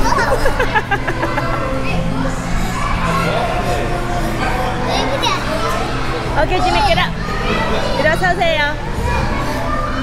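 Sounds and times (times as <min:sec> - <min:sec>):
children shouting: 0:00.0 - 0:06.3, 0:08.9 - 0:10.0.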